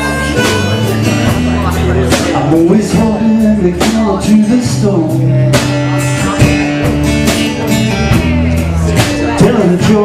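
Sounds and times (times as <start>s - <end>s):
bass notes: 0.0s - 10.0s
drum kit steady beat: 0.0s - 10.0s
electric guitar chords: 0.0s - 10.0s.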